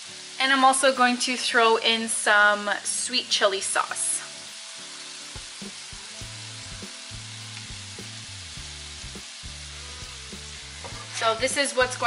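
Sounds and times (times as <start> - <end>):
vegetables sizzling in a frying pan: 0.0 - 12.0.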